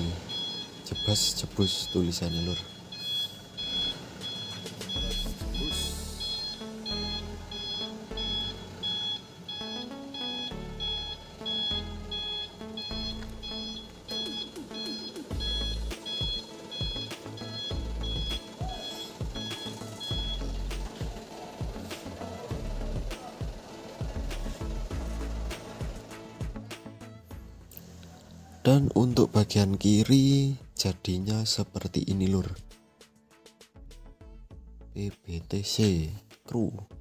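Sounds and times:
background music: 0.0s - 2.8s, 3.5s - 37.0s
truck reversing alarm beeps: 0.0s - 30.4s.

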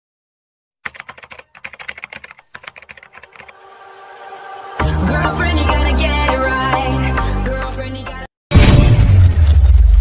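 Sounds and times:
keyboard typing clicks: 0.8s - 3.5s
steady swelling sound: 3.5s - 5.6s.

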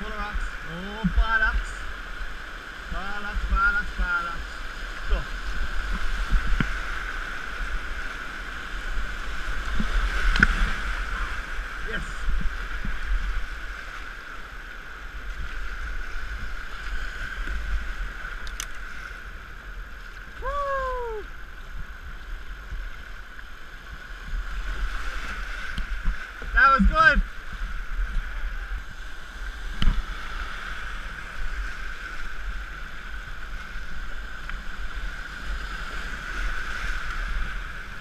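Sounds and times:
paddle splashes: 0.0s - 38.0s
water rushing through rapids: 0.0s - 38.0s.

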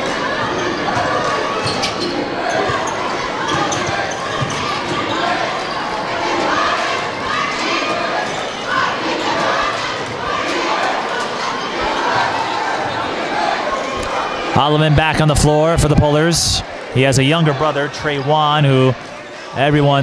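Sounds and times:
crowd voices: 0.0s - 20.0s.

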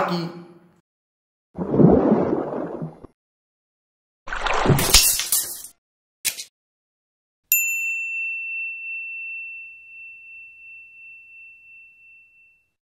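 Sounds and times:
bright bell ding: 7.5s - 12.7s.

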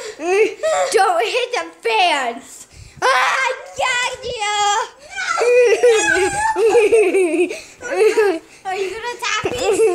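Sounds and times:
children laughing: 5.1s - 9.9s.

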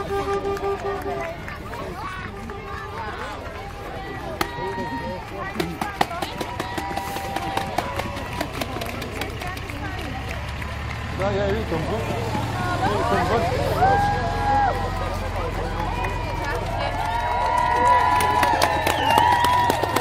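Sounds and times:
crowd chattering and calling out: 0.0s - 20.0s
truck diesel engine rumbling: 0.0s - 20.0s
sharp claps: 0.1s - 12.5s, 15.4s - 20.0s.

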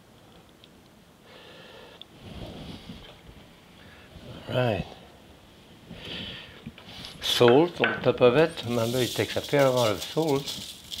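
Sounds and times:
person breathing through nose: 1.2s - 3.0s, 5.9s - 6.6s.

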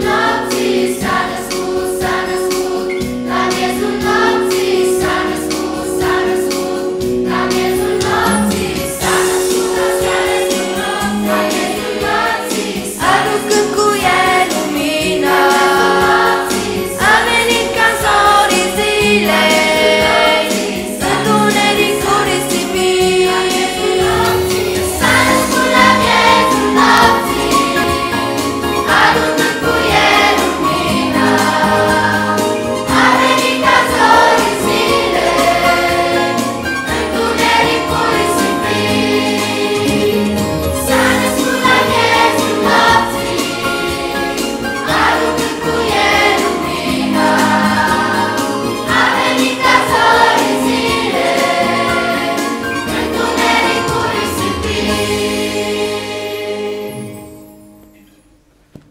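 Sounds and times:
children's choir singing a carol: 0.0s - 57.4s
low bass notes: 23.7s - 28.1s.

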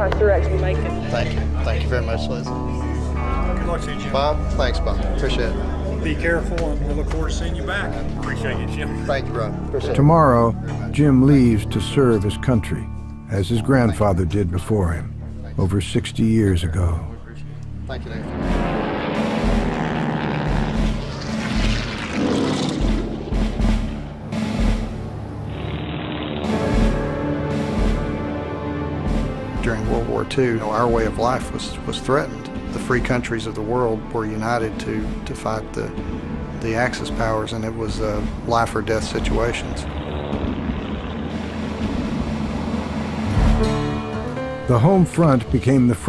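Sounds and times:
background music score: 0.0s - 46.0s
deep throb: 13.5s - 45.6s
propeller aircraft droning: 17.4s - 44.6s.

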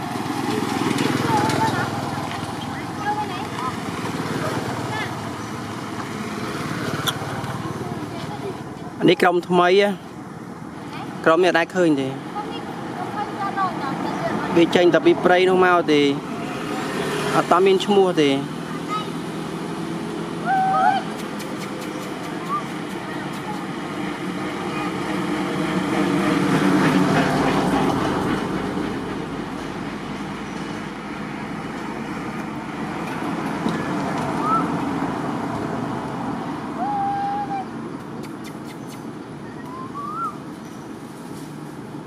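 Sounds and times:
motor vehicle passing: 0.0s - 42.0s
high-pitched animal calls: 36.8s - 40.4s.

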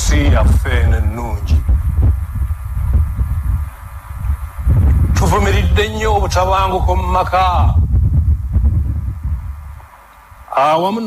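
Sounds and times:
low uneven throbbing rumble: 0.0s - 11.0s.

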